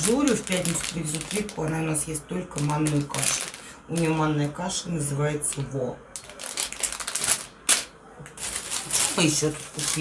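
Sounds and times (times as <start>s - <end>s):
plastic bag crinkling: 0.0s - 4.6s, 5.4s - 10.0s.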